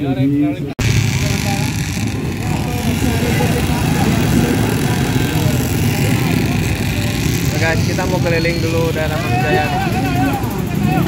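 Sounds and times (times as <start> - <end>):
people's voices: 0.0 - 11.0
motorcycle and scooter engines: 0.5 - 11.0.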